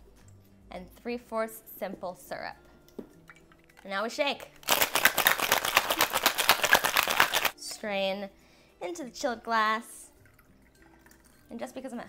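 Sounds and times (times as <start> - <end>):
ice rattling in cocktail shaker: 4.4 - 7.6.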